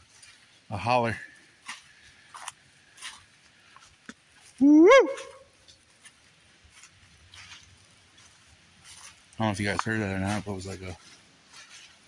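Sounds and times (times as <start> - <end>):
man whooping call: 4.6 - 5.5.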